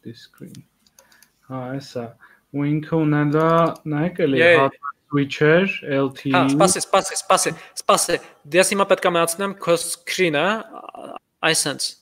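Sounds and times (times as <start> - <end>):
faint keyboard typing: 0.4 - 1.4, 3.2 - 3.9
man talking: 1.5 - 12.0.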